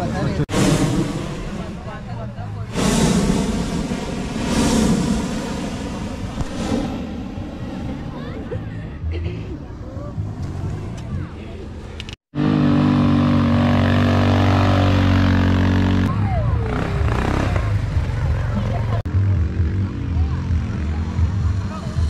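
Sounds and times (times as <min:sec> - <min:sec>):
mixed voices: 0:07.5 - 0:12.0
quad bike engine running: 0:12.4 - 0:21.7.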